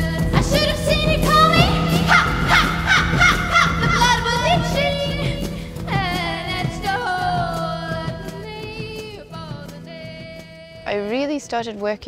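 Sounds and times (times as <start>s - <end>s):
high swooping vocal cries: 1.2s - 5.8s.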